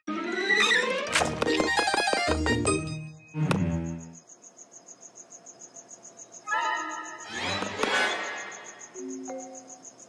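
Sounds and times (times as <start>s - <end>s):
cricket chirping: 1.6s - 10.0s.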